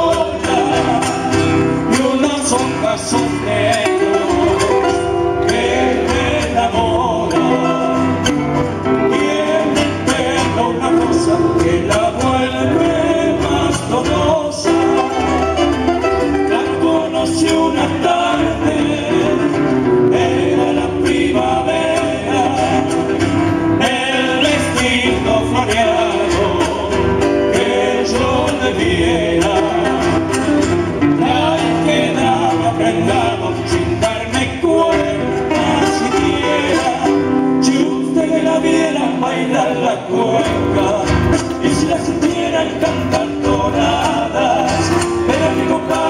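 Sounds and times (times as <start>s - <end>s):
acoustic guitars strummed: 0.0s - 46.0s
men singing in harmony: 0.0s - 46.0s.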